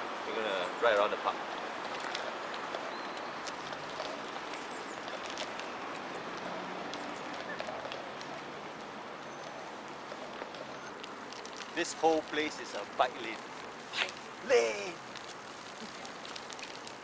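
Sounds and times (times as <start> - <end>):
bicycle tyre rumble: 0.0 - 17.0.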